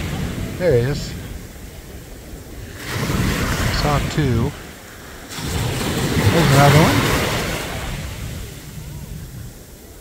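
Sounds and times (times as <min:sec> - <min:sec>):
small waves washing on beach: 0:00.0 - 0:10.0
wind rumbling on microphone: 0:00.0 - 0:10.0.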